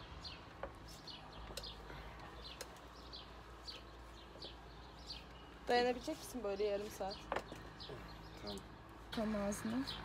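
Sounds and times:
small bird chirping: 0.0 - 8.8.

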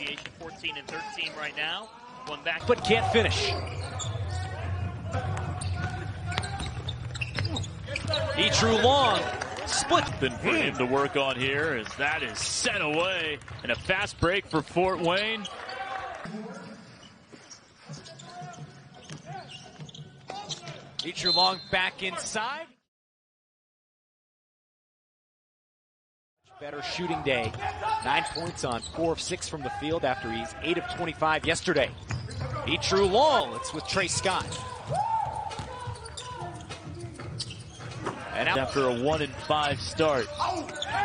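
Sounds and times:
sneaker squeaks: 0.9 - 8.9, 16.5 - 21.9, 27.4 - 29.2, 31.5 - 41.0
basketball bouncing on hardwood: 34.4 - 35.8.

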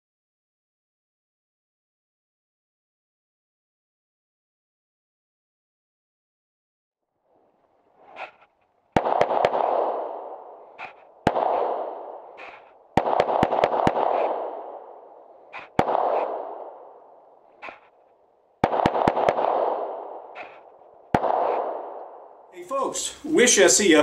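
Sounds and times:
pistol shots with echo: 8.1 - 22.5.

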